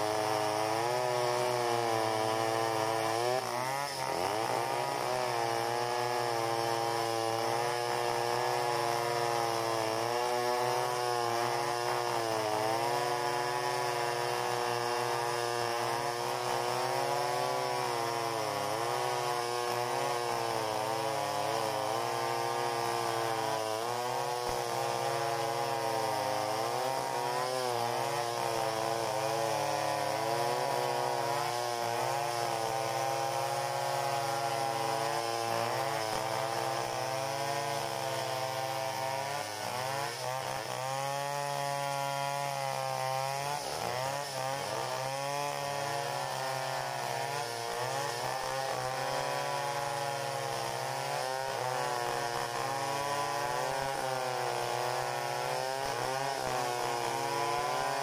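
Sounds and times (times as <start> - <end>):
chainsaws cutting log: 0.0 - 58.0.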